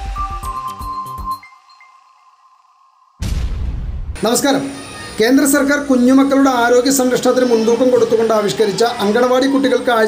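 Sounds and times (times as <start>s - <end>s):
sound effect with deep rumble: 3.2s - 4.2s.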